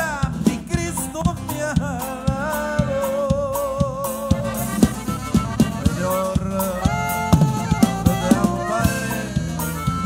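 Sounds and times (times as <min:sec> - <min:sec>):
electric bass: 0:00.0 - 0:10.0
steady drum beat: 0:00.0 - 0:10.0
saxophone melody: 0:04.2 - 0:10.0.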